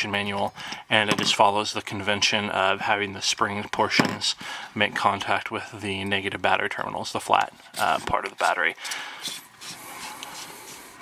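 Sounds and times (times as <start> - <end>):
threads scraping while screwing: 7.6 - 11.0.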